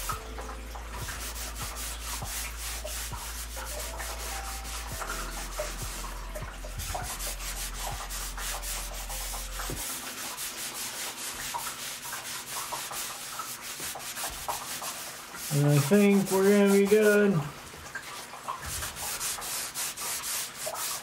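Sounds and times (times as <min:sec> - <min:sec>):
towel scrubbing canvas: 0:01.0 - 0:17.5, 0:18.6 - 0:21.0.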